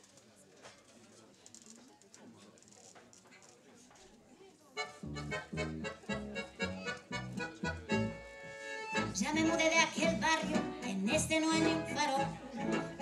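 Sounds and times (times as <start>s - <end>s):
accordion: 4.8s - 13.0s
double bass: 4.9s - 13.0s
violin: 5.0s - 13.0s
piano: 9.3s - 13.0s.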